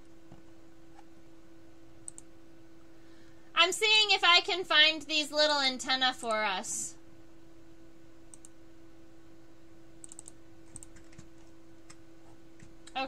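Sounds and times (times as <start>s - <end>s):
steady low hum: 0.0s - 13.0s
computer keyboard clicks: 2.0s - 2.3s, 10.0s - 12.0s.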